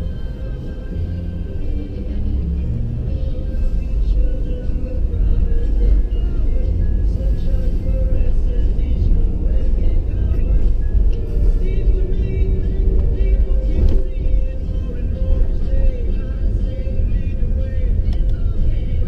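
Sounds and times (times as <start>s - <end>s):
car engine and tyre rumble: 0.0s - 19.0s
music with vocals on car radio: 0.0s - 19.0s.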